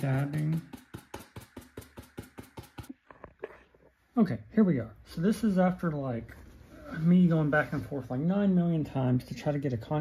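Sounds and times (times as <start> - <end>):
paintbrush tapping on foam board: 0.0 - 3.0.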